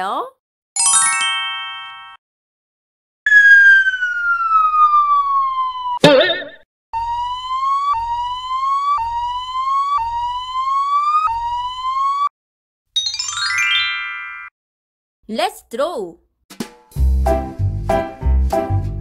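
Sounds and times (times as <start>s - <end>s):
rising siren-like whoop: 3.3s - 6.0s, 7.0s - 12.3s
falling cartoon whistle: 3.3s - 12.3s.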